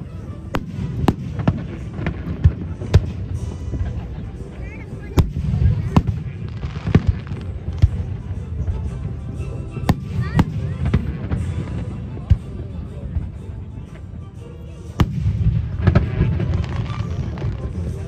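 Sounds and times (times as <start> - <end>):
fireworks bangs: 0.6 - 4.0, 5.2 - 8.1, 15.0 - 18.0.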